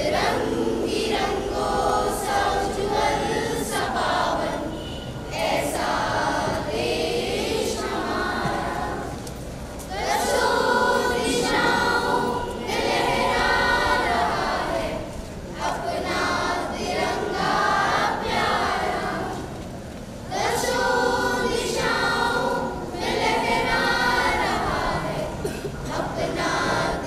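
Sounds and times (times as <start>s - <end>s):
children's choir singing: 0.0s - 27.0s.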